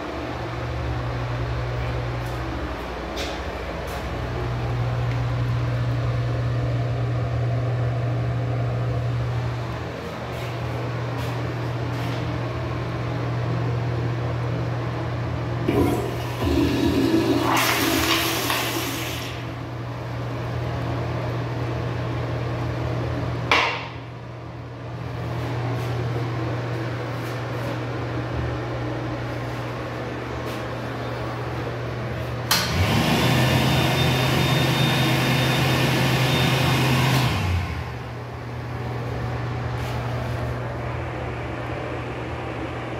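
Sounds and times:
steady background hum: 0.0 - 42.9
toilet flushing: 15.6 - 19.9, 32.5 - 38.2
hand dryer blowing with whine: 15.6 - 23.7, 32.2 - 42.9.

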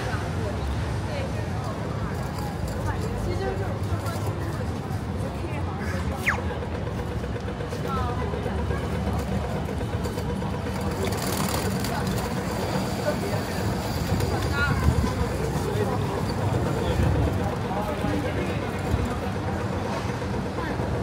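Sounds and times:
passers-by talking: 0.0 - 21.0
traffic rumble: 0.0 - 21.0.

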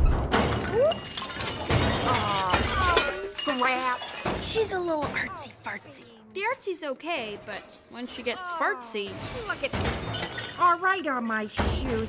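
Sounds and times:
metal pots and pans clattering: 0.0 - 6.0, 7.2 - 12.0.

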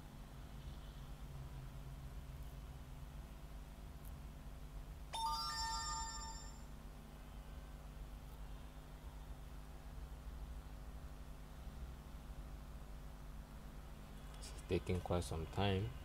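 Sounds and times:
electronic chime: 5.2 - 6.7.

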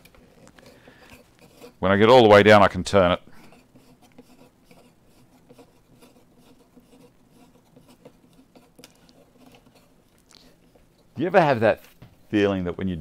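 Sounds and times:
bolt scratching and ticking in metal block: 3.5 - 9.9.

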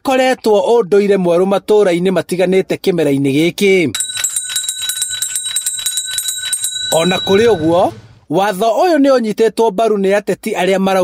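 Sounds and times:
handbell rung rapidly: 4.0 - 8.1.

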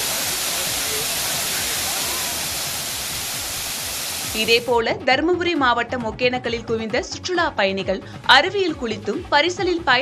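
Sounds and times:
waterfall rushing and splashing: 0.0 - 4.7.

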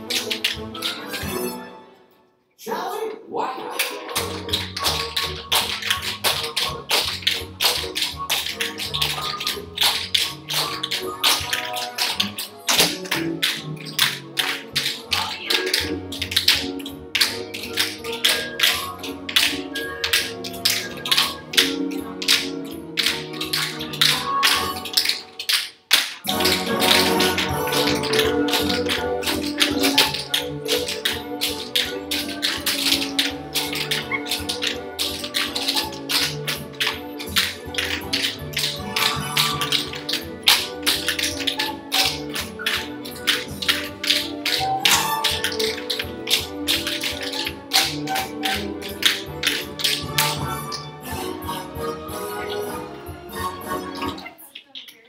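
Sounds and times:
song playing: 0.0 - 3.0, 3.8 - 54.3
tap shoes on wooden floor: 4.2 - 50.9.

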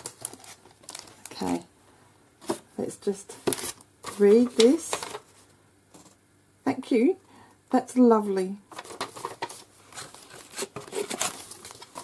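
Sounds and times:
sticker packets rustling and crinkling: 0.0 - 1.6, 8.7 - 12.0.

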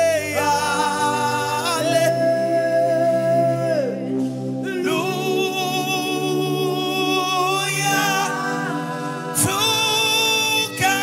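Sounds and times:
man singing gospel: 0.0 - 11.0.

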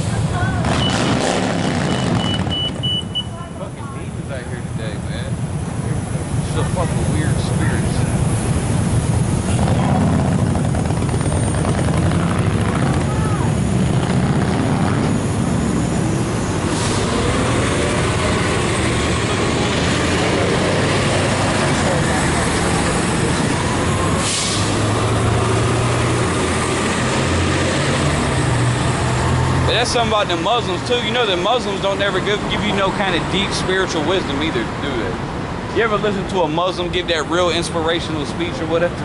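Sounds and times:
bus engine rumbling: 0.0 - 39.0.

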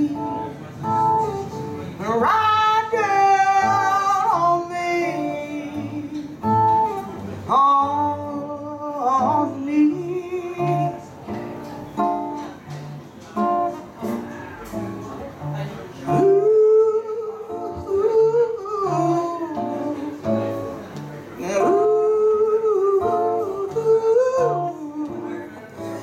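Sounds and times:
woman singing blues with vibrato: 0.0 - 0.4, 2.0 - 6.7, 7.5 - 11.2, 16.2 - 20.3, 21.4 - 25.5
acoustic guitar strumming: 0.0 - 26.0.

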